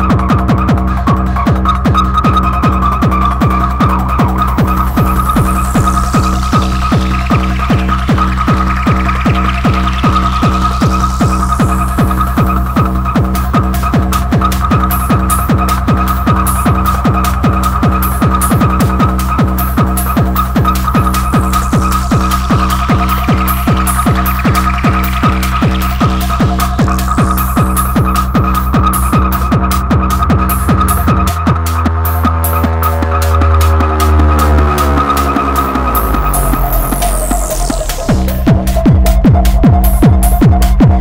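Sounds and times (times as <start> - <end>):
distorted kick drum: 0.0 - 41.0
fast electronic music: 0.0 - 41.0
buzzing high synth line: 2.4 - 40.0
high held tone: 2.5 - 39.2
hissing noise sweep: 2.6 - 38.9.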